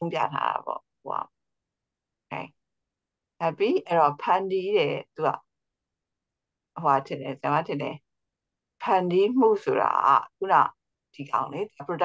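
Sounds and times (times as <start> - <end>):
person speaking over video call: 0.0 - 1.3, 3.4 - 5.4, 6.8 - 8.0, 8.8 - 12.0.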